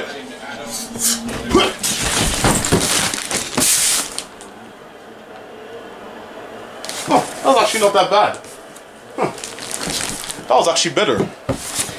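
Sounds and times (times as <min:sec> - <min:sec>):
objects falling with thuds: 0:01.3 - 0:03.8.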